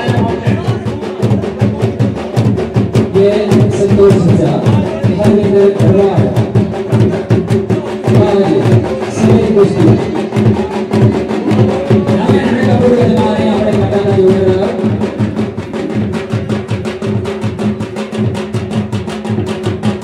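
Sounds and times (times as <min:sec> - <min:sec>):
drums beating fast rhythm: 0:00.0 - 0:20.0.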